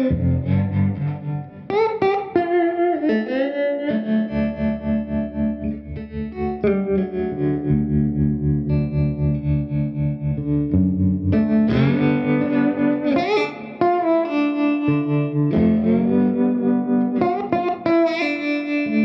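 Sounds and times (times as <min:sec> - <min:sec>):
electric slide guitar blues: 0:00.0 - 0:19.0.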